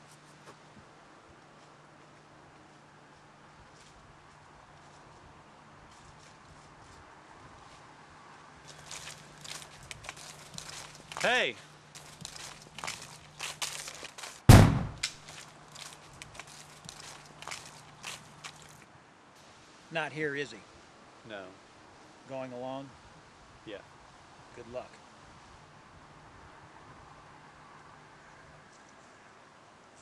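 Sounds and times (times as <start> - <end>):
footsteps on gravel: 8.6 - 18.9
shotgun blast: 14.5 - 15.1.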